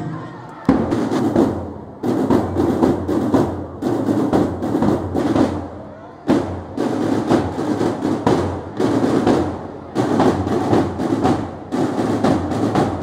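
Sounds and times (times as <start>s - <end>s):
marching snare drums: 0.6s - 13.0s.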